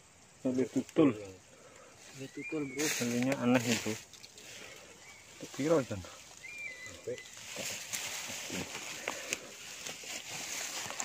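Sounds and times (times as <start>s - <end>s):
outdoor hiss: 0.0s - 11.0s
small clicks and rustles: 2.9s - 5.6s, 7.1s - 11.0s.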